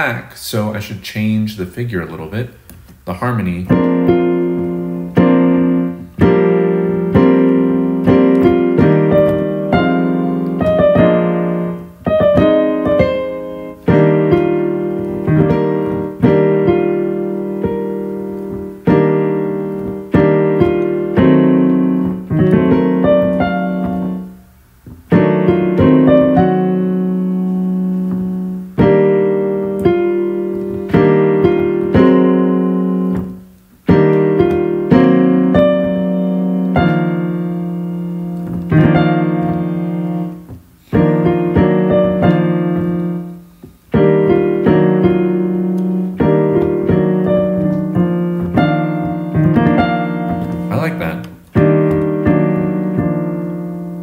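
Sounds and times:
digital piano chords: 3.0s - 54.0s.

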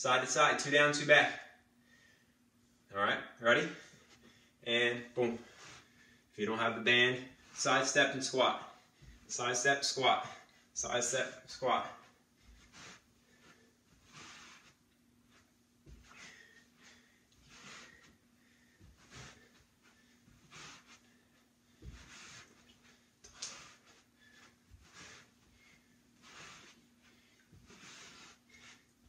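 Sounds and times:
faint steady hum: 0.0s - 29.0s
man breathing heavily: 15.9s - 29.0s.

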